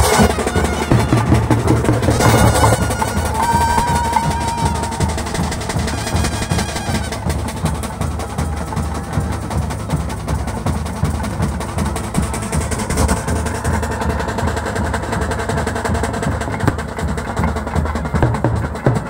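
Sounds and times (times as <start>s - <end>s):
other percussion: 0.0s - 19.0s
rapid drumming: 0.0s - 19.0s.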